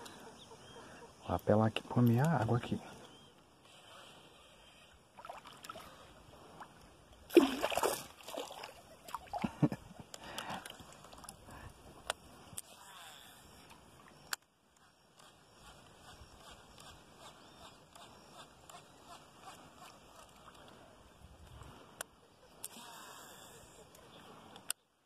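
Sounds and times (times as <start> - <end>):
faint water lapping: 2.6 - 24.6
water splashing: 5.2 - 9.6.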